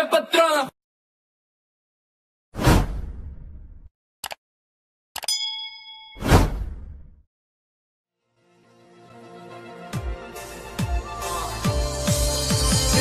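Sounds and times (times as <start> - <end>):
ringing ding: 5.2 - 6.2.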